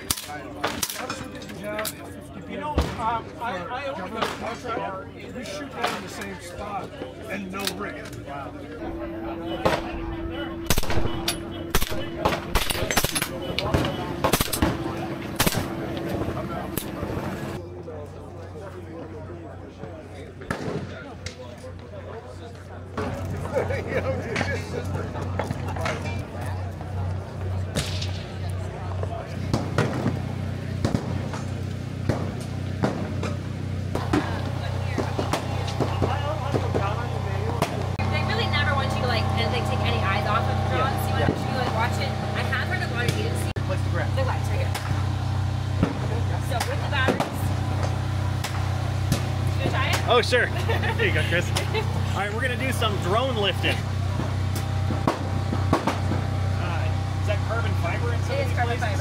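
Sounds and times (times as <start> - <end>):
steady low hum: 6.6 - 17.8
rifle shots: 10.7 - 15.8
distant gunshots: 10.7 - 15.9.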